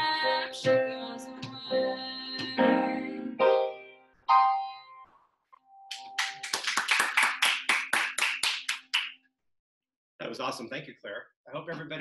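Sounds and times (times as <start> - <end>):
hand clapping: 5.9 - 9.3.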